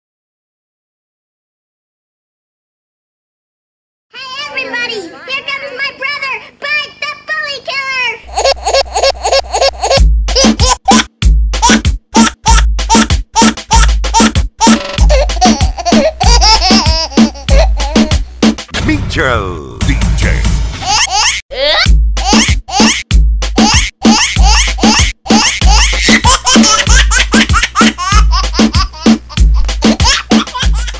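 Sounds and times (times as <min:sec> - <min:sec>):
baby voice and laughter: 0:08.2 - 0:18.2, 0:20.8 - 0:30.9
song with heavy bass beat: 0:10.0 - 0:18.9, 0:21.9 - 0:30.9.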